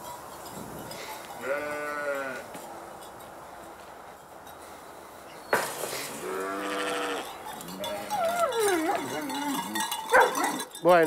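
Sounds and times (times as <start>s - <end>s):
sheep bleating: 1.4s - 2.5s, 6.2s - 9.6s.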